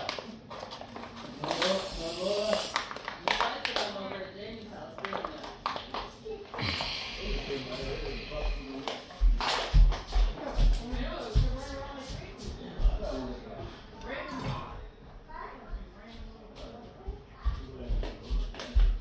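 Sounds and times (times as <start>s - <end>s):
indistinct voices: 6.4s - 9.6s.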